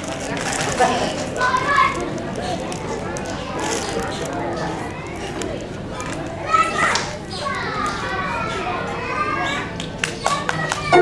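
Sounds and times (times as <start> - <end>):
young children chattering: 0.0 - 11.0.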